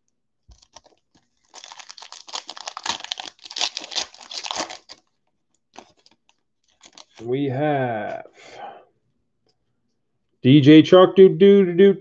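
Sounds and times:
wrapper tearing and crinkling: 0:00.5 - 0:07.2.

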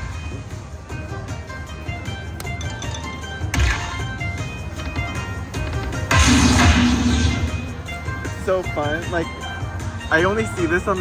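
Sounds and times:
slot machine electronic chimes: 0:02.5 - 0:04.1.

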